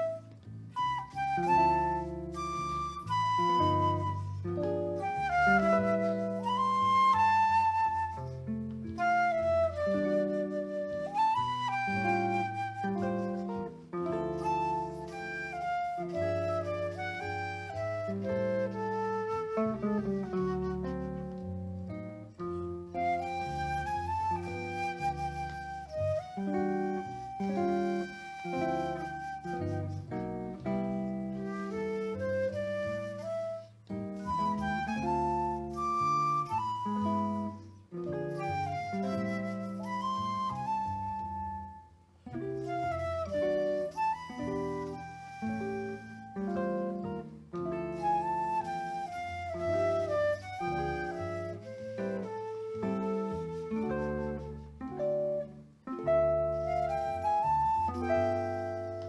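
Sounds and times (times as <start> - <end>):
acoustic bass guitar: 0.0 - 59.0
flute melody: 0.0 - 59.0.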